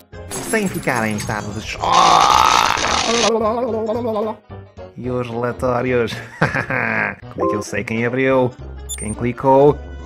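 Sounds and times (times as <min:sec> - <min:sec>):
crackling buzzing electric zap: 0:02.7 - 0:03.3.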